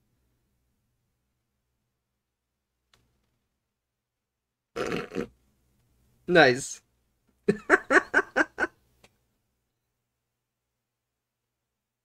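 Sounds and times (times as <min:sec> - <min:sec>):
man's stifled laugh: 0:07.5 - 0:08.8.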